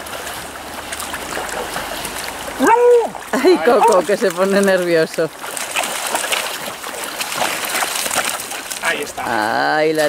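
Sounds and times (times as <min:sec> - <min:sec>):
river water rushing over stones: 0:00.0 - 0:10.0
high-pitched voiced cry: 0:02.6 - 0:03.2.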